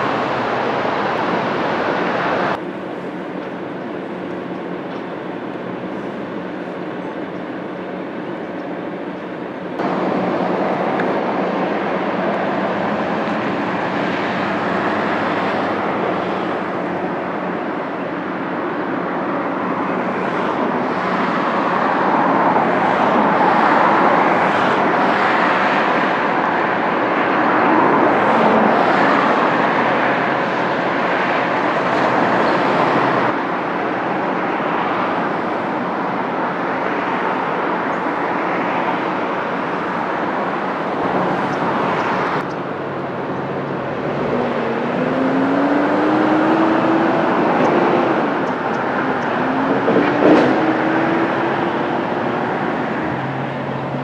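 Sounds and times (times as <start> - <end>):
road traffic noise: 0.0 - 54.0.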